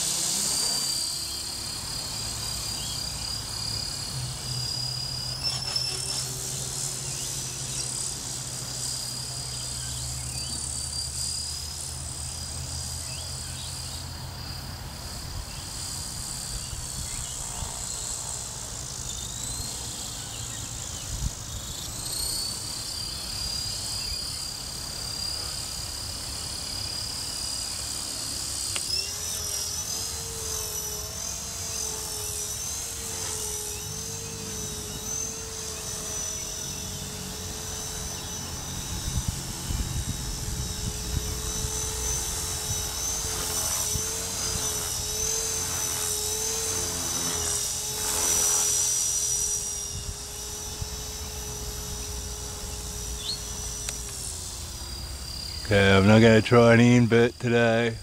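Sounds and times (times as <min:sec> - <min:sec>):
rc helicopter motor whine: 0:00.0 - 0:58.0.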